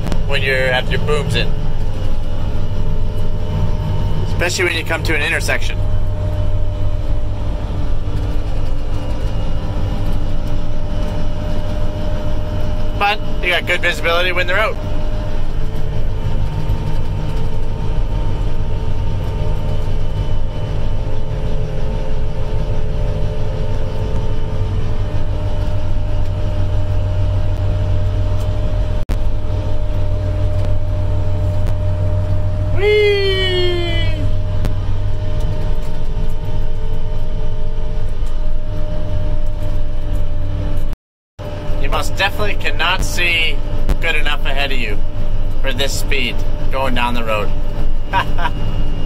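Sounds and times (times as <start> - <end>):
engine and drivetrain drone: 0.0 - 49.0
steady hum tones: 0.0 - 49.0
pitched sound falling in pitch: 32.7 - 34.4.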